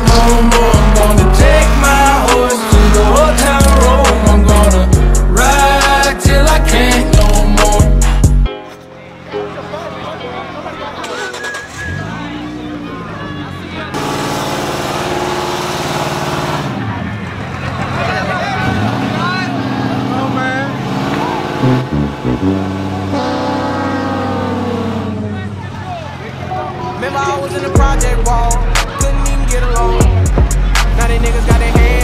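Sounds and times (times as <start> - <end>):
vehicle engine revving: 0.0 - 8.4, 11.0 - 32.0
crowd talking and shouting: 0.0 - 32.0.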